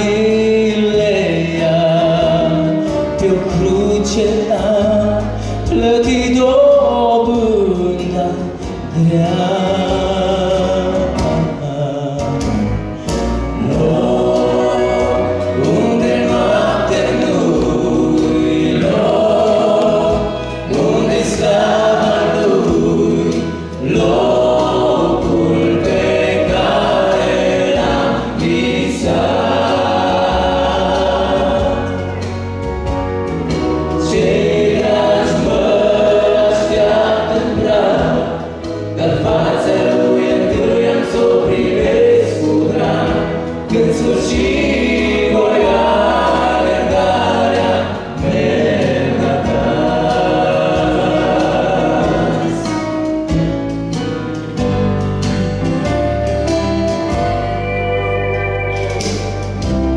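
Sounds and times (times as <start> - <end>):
low accompaniment: 0.0 - 59.9
choir singing a hymn: 13.0 - 53.5.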